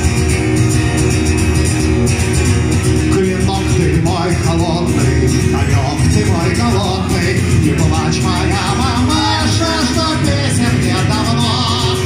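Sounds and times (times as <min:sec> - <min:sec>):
acoustic guitar strumming: 0:00.0 - 0:12.0
man singing: 0:03.0 - 0:12.0.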